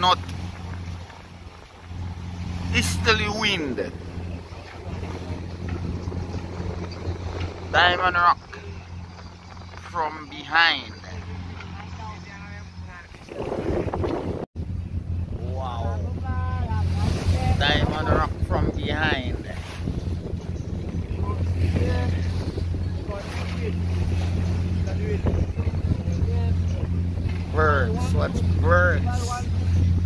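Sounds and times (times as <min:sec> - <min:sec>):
boat engine droning: 0:00.0 - 0:30.0
water rushing past hull: 0:00.0 - 0:30.0
wind buffeting microphone: 0:00.0 - 0:30.0.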